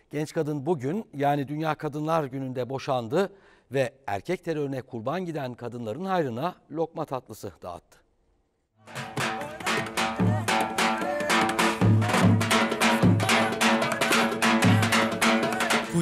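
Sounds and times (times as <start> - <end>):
bass drum beaten in dance rhythm: 8.9 - 16.0.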